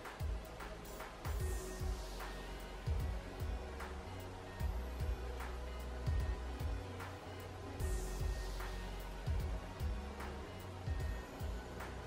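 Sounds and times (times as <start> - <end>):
music with pulsing beat: 0.0 - 12.0.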